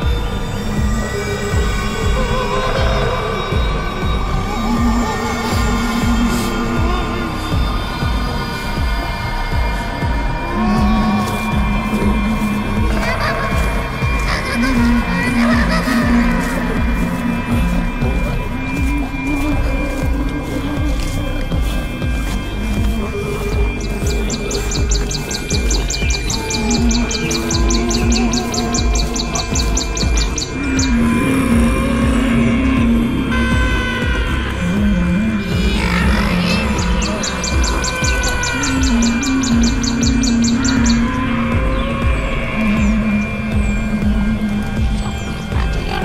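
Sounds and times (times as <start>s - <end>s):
low drum beats: 0.0s - 46.0s.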